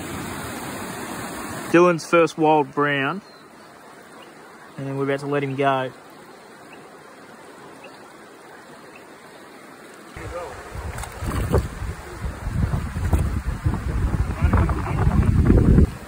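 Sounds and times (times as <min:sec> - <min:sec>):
shallow stream running: 0:00.0 - 0:16.0
wind buffeting microphone: 0:10.2 - 0:16.0.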